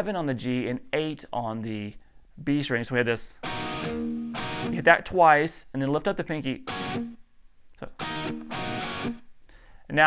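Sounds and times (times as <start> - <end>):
electric guitar chord strikes: 3.4 - 4.8, 6.7 - 7.2, 8.0 - 9.2.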